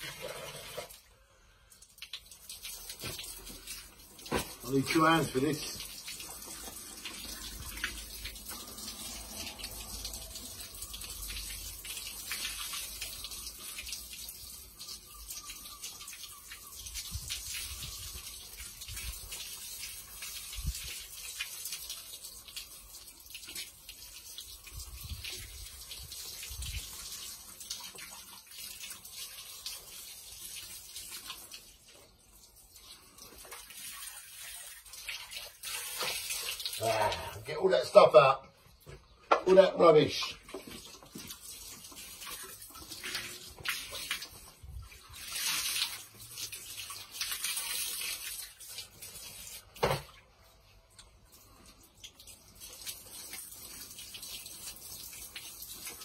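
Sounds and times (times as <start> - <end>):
hose spraying water: 0.0 - 1.1, 1.7 - 38.3, 39.5 - 50.1, 51.0 - 56.0.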